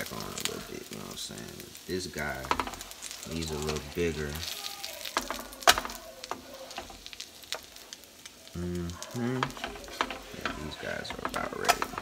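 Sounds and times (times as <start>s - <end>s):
faint frying sizzle: 0.0s - 12.0s
spatula knocking and scraping pan: 2.2s - 7.9s, 9.3s - 12.0s.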